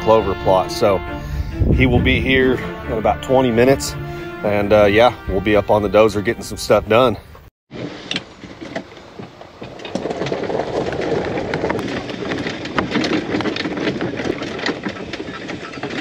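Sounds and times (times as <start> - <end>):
cart body rattling: 0.0 - 1.1, 7.7 - 16.0
golf cart driving over lawn: 7.7 - 16.0.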